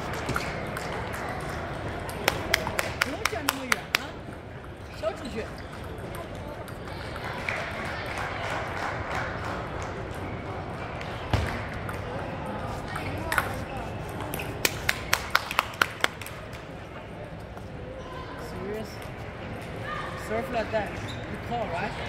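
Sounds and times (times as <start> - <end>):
murmur of voices: 0.0 - 22.0
table tennis ball bouncing and struck: 11.2 - 12.2.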